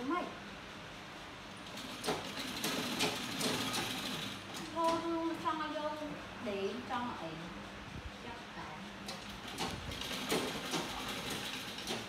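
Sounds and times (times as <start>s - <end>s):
sewing machine clattering: 1.6s - 5.0s, 9.1s - 12.0s.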